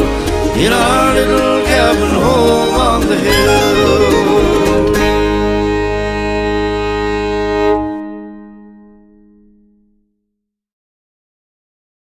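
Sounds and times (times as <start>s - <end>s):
band holding final chord: 2.2s - 9.5s.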